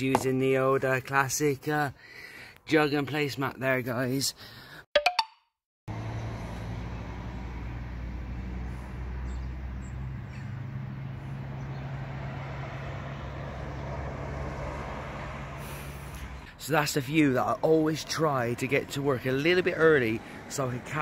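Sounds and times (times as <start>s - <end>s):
engine hum: 5.9s - 21.0s.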